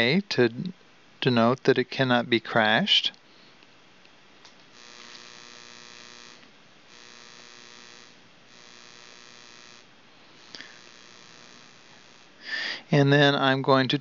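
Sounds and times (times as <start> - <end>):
faint electrical buzz: 0.0 - 14.0.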